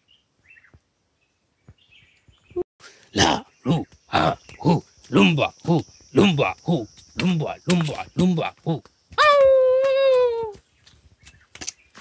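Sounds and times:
person chanting ho syllables: 3.0 - 10.6
person's long high call: 3.2 - 10.6.

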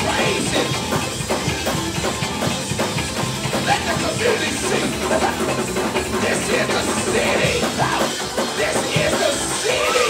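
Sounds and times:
drum kit: 0.0 - 10.0
keyboard playing: 0.0 - 10.0.

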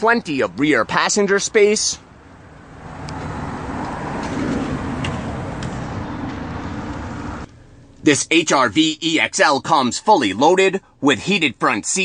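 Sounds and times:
road traffic rumble: 0.0 - 8.9.

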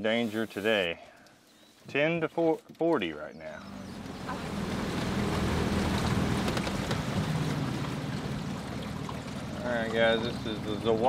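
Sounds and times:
wind: 0.0 - 11.0
water noise: 3.5 - 11.0
boat motor humming: 3.6 - 11.0.

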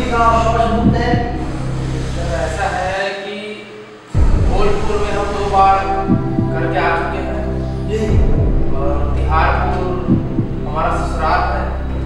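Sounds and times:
double bass heartbeat pulse: 0.0 - 2.2, 4.2 - 10.9
suspense music with low drone: 0.0 - 3.0, 4.0 - 12.0.

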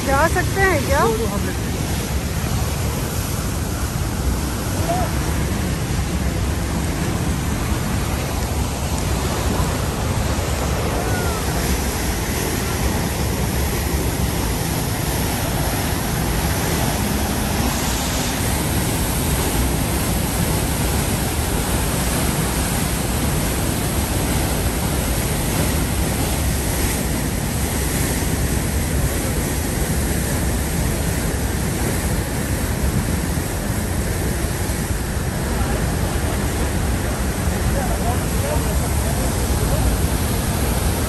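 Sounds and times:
waterfall rushing: 0.0 - 41.0.

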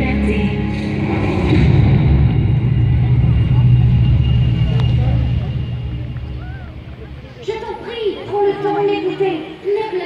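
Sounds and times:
low rumbling drone over loudspeakers: 0.0 - 10.0.

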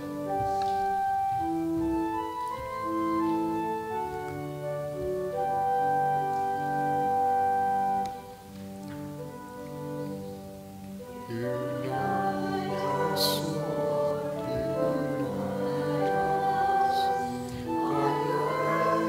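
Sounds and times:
organ playing slow chords: 0.0 - 19.0.

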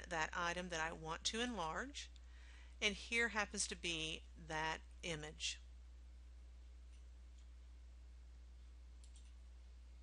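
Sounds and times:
steady low hum: 0.0 - 10.0
computer mouse clicks: 9.0 - 9.4.

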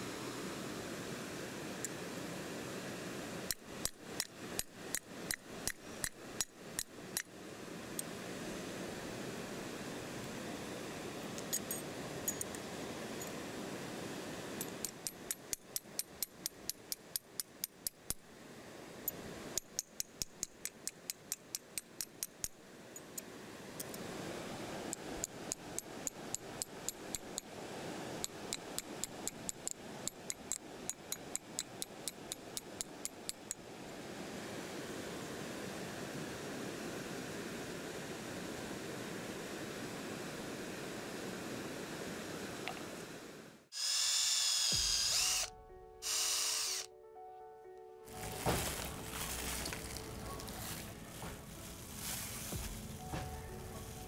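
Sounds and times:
fast water rushing: 0.0 - 15.5, 22.7 - 43.3.

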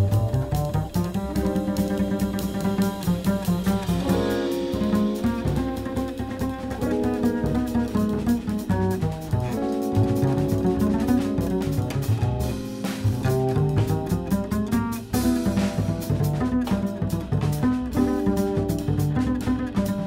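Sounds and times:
jazz group playing: 0.0 - 20.0.

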